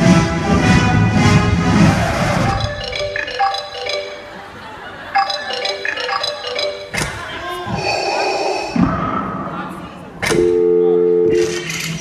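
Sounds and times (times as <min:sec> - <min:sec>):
high chiming notes: 0:02.5 - 0:07.0.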